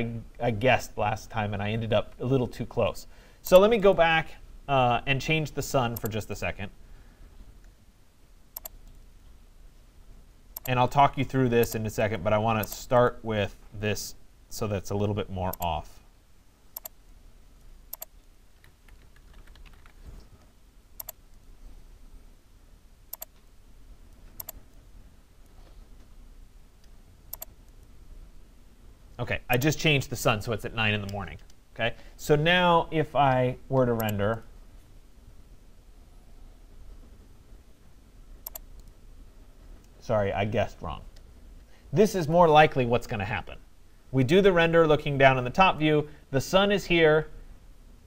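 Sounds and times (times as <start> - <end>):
faint keyboard typing: 8.5 - 9.1, 10.5 - 10.8, 12.6 - 12.9, 16.7 - 17.0, 17.9 - 21.5, 23.1 - 23.5, 24.1 - 24.8, 26.8 - 27.9, 33.7 - 34.5, 38.4 - 39.0
computer mouse clicks: 8.6 - 9.0, 10.6 - 10.8, 16.8 - 17.0, 17.9 - 20.0, 21.0 - 21.4, 23.1 - 23.5, 24.4 - 24.6, 26.8 - 27.9, 38.4 - 39.0.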